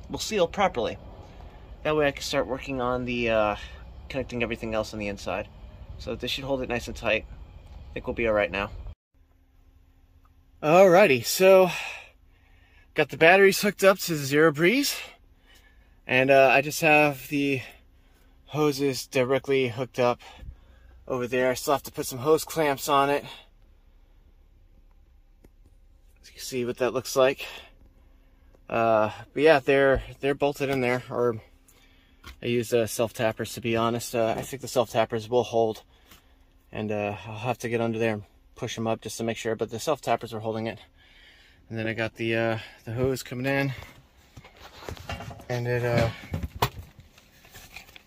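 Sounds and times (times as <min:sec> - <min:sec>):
faint low hum: 0:00.0 - 0:47.9.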